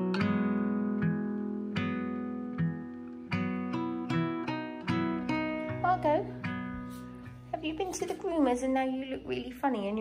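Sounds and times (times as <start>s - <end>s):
acoustic guitar music: 0.0s - 10.0s.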